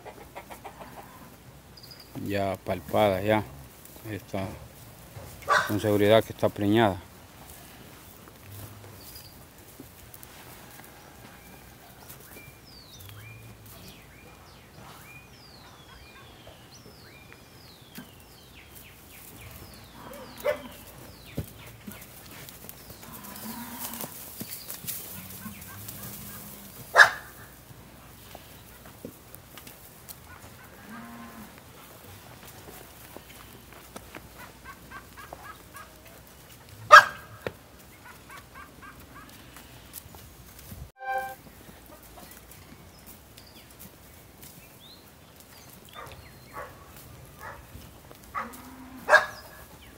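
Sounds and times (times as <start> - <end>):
bird chirping: 12.3 - 22.1.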